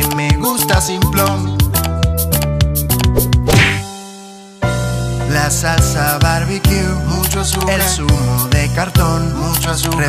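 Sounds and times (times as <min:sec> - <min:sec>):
upbeat song instrumental backing: 0:00.0 - 0:10.0
sharp hit with a swish: 0:03.2 - 0:03.9.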